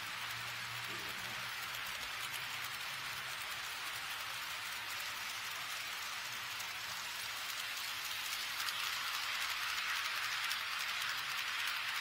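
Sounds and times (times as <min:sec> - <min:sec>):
model train wheels rolling on rails: 0:00.0 - 0:12.0.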